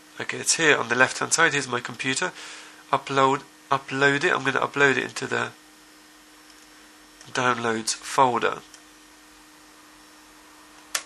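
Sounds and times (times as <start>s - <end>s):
faint hum: 0.0s - 11.0s
steady hiss: 0.0s - 11.0s.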